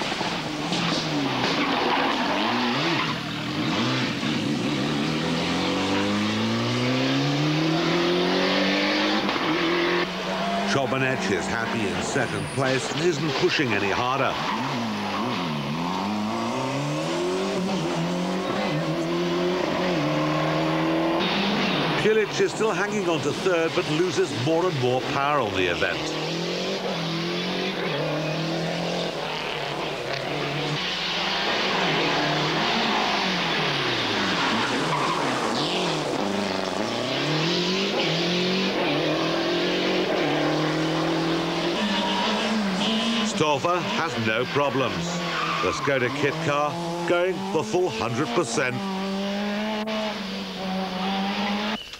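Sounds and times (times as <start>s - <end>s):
rally car engine revving: 0.0s - 51.9s.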